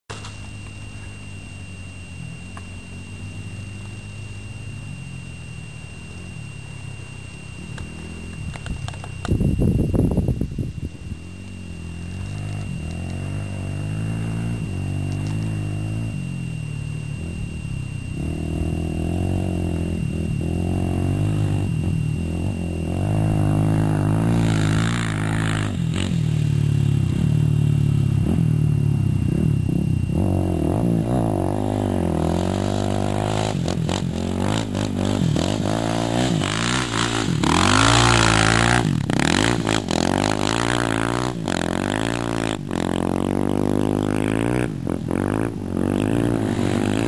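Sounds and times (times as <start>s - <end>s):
motorcycle engine revving: 0.0s - 47.0s.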